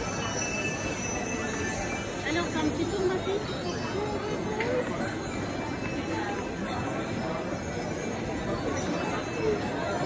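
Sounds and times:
indistinct shoppers' voices: 0.0 - 10.0.

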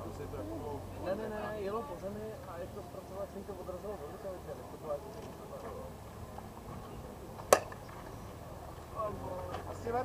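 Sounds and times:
bat hitting ball crack: 7.4 - 7.8.

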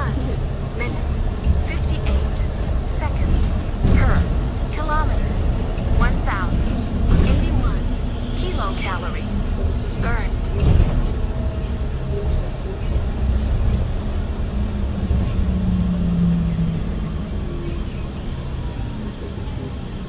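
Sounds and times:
bus engine and road rumble: 0.0 - 20.0
passenger voices: 0.0 - 20.0.

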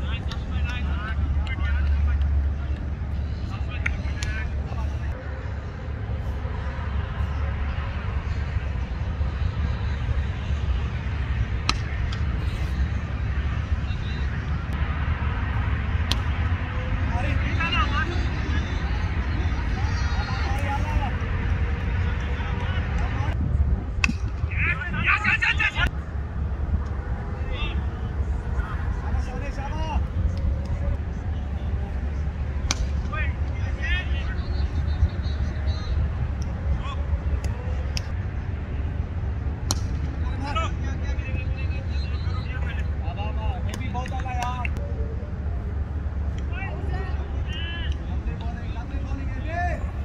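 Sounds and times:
players shouting: 0.0 - 23.4, 24.4 - 45.0, 45.6 - 50.0
low steady rumble: 0.0 - 50.0.

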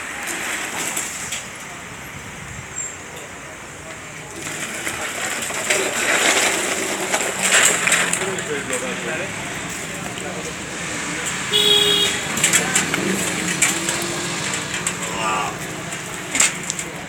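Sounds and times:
metal debris scraping on paving: 0.0 - 2.1, 2.8 - 17.0
street traffic: 0.0 - 17.0.

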